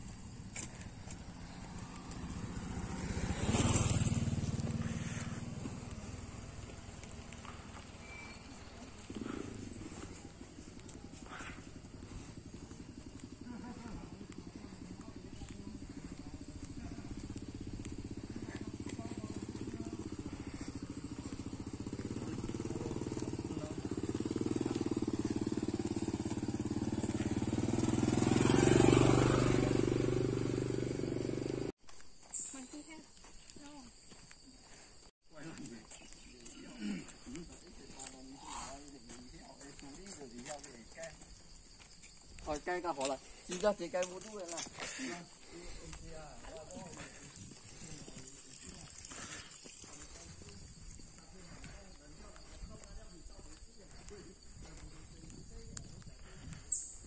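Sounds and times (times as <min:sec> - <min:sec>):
motorcycle passing: 0:00.0 - 0:31.7, 0:34.6 - 0:57.0
motorcycle engine running: 0:00.0 - 0:31.8, 0:42.4 - 0:57.0.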